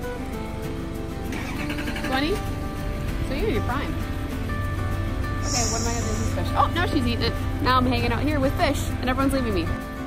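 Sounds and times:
background music held tones: 0.0 - 10.0
wavering voice-like sound: 5.4 - 6.3.

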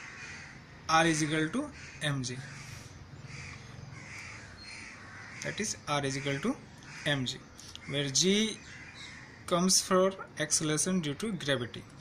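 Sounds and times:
crow cawing: 0.0 - 9.7
person lecturing: 0.9 - 2.5, 5.4 - 8.6, 9.5 - 11.9.

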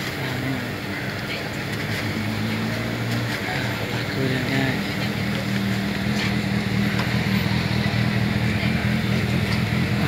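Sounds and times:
faint background voices: 0.0 - 10.0.

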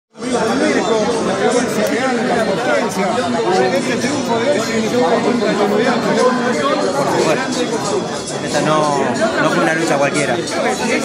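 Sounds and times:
overlapping voices talking: 0.2 - 11.0.

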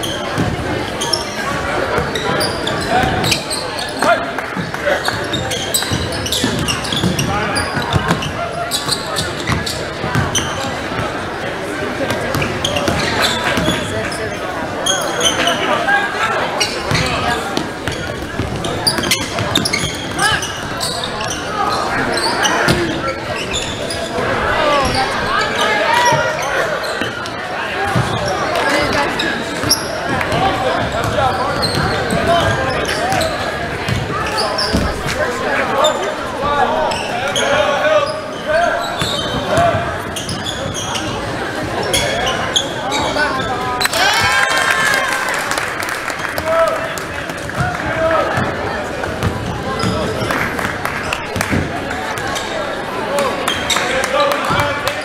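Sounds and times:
crowd and players' voices: 0.0 - 55.0
basketball bouncing on court: 0.3 - 0.7, 5.3 - 11.2, 12.1 - 13.9, 16.9 - 21.4, 29.6 - 35.1, 47.4 - 50.4.

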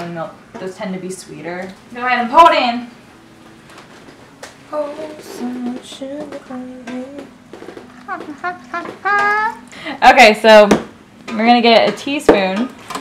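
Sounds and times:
young person singing: 4.7 - 7.4, 8.0 - 9.7.

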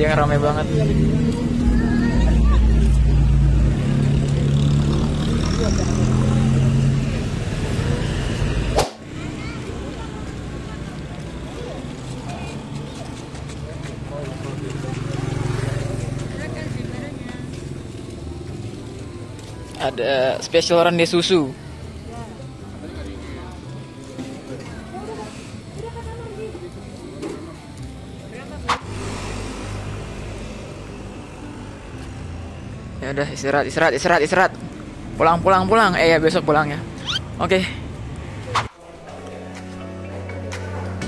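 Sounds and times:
motorcycle engines running: 0.0 - 41.0
motorcycle passing: 0.0 - 41.0
people chattering: 0.0 - 41.0.

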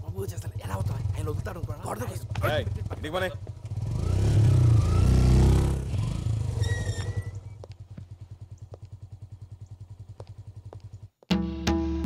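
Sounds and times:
motorcycle engines pulling away: 0.0 - 11.2.

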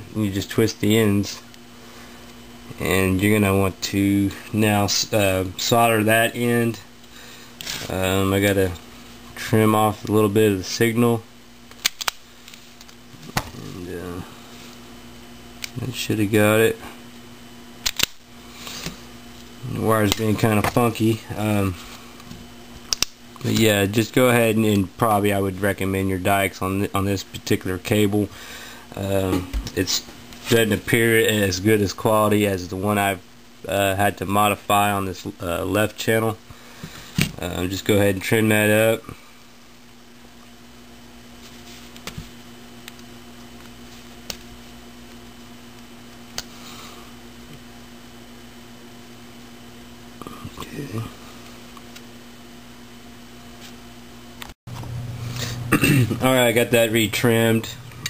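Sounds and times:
low background hum: 0.0 - 58.0
wire stripper clicks: 11.7 - 12.2, 17.8 - 18.2, 22.9 - 23.7.

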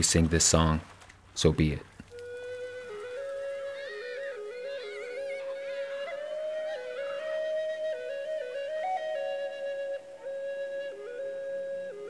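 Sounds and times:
higher warbling flute line: 2.1 - 12.0
low flute melody: 2.1 - 12.0.

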